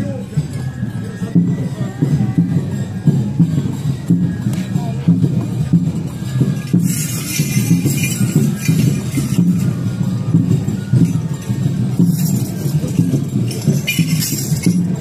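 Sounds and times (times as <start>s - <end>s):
drums and accompaniment: 0.0s - 15.0s
metallic jingling: 6.0s - 15.0s.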